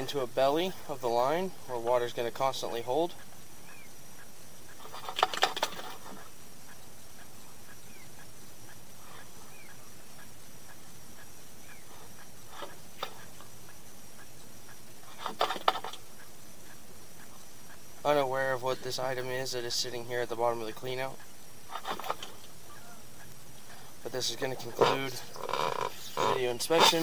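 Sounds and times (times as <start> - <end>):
background hiss: 0.0 - 27.0
clicking and rattling: 4.7 - 6.3, 15.0 - 16.0.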